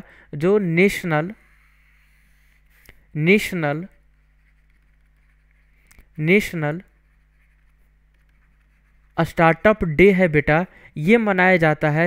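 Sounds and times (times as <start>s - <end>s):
steady low hum: 0.0s - 11.9s
stylus scratching on tablet: 1.2s - 9.8s.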